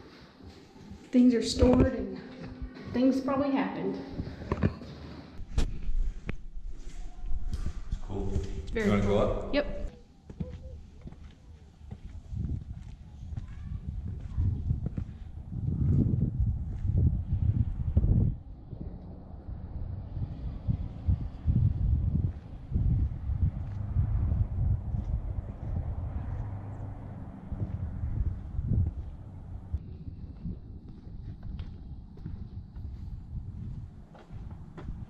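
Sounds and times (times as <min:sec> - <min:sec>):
wind buffeting microphone: 0:05.4 - 0:35.0
footsteps on concrete: 0:09.9 - 0:19.0, 0:22.0 - 0:35.0.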